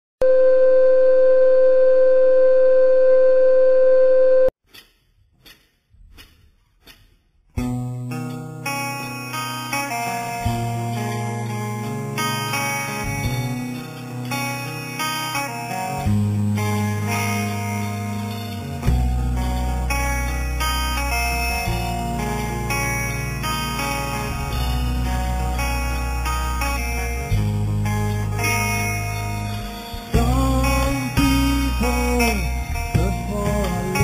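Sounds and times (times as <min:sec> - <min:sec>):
band playing a ballad with guitar: 0:07.6 - 0:34.0.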